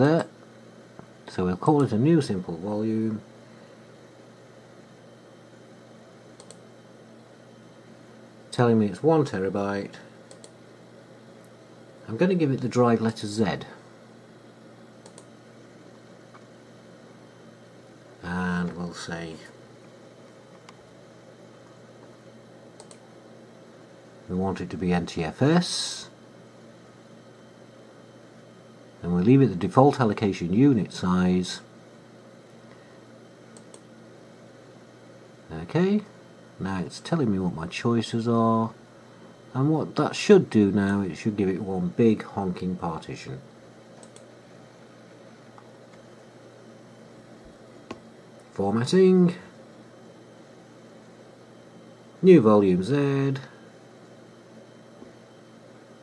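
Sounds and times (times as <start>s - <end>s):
faint steady hum: 0.0s - 56.0s
computer mouse button click: 6.4s - 6.6s.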